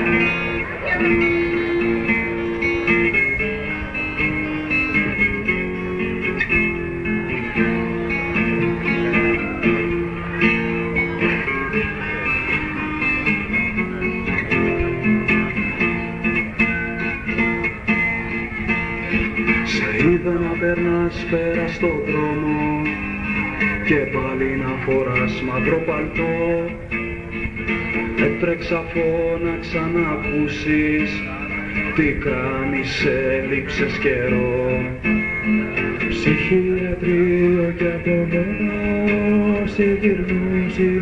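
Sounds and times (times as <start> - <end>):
bass guitar: 0.0 - 41.0
guitar chords: 0.0 - 41.0.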